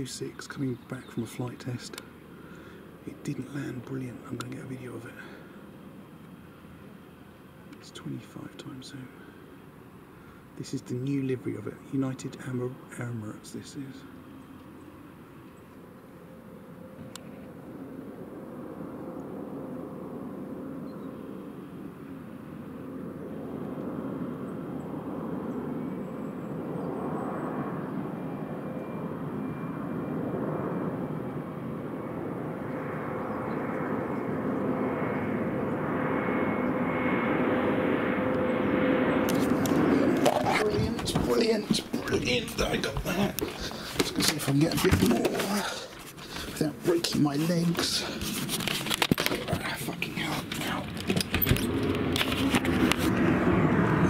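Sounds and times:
jet engine whine: 0:00.0 - 0:54.0
jet noise on approach: 0:00.0 - 0:54.0.

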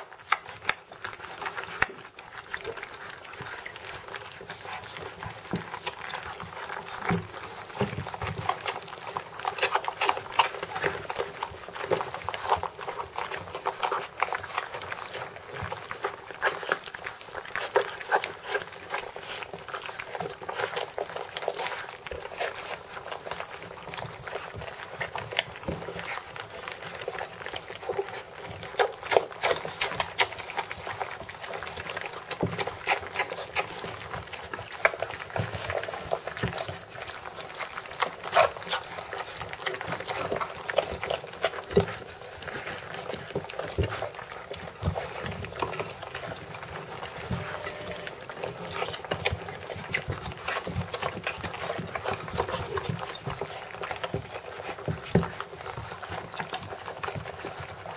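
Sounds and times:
puppies smacking and chewing: 0:00.0 - 0:57.9.

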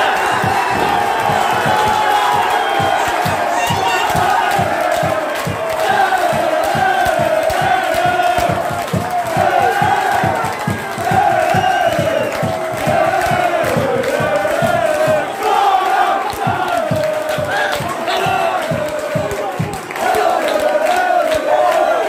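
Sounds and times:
football crowd chanting: 0:00.0 - 0:22.0.

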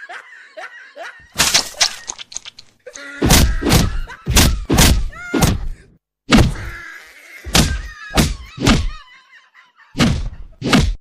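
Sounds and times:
punches landing heavy thuds: 0:03.2 - 0:06.7, 0:07.5 - 0:09.0, 0:10.0 - 0:11.0.

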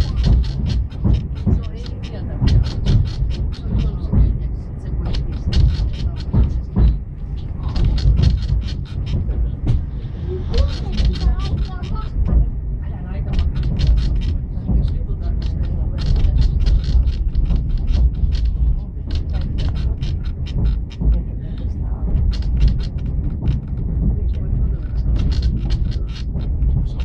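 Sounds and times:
fast regular sharp strokes: 0:00.0 - 0:12.4, 0:13.2 - 0:27.0
train carriage rumble: 0:00.0 - 0:27.0.

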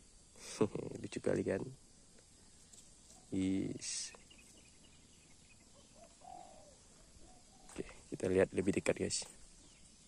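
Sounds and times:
faint bird call: 0:02.5 - 0:08.1.

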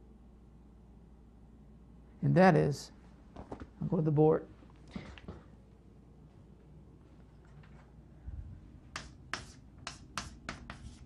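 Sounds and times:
chalk strokes on blackboard: 0:08.9 - 0:11.0.

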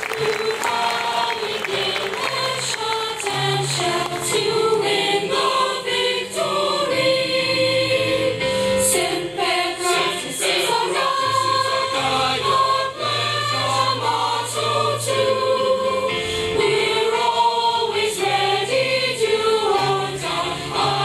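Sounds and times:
choir singing long notes: 0:00.0 - 0:21.0.

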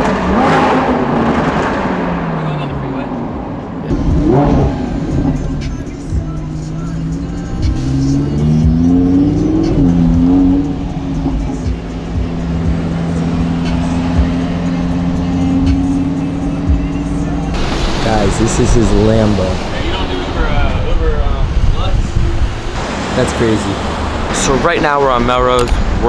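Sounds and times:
car engine revving from cabin: 0:03.9 - 0:05.5.

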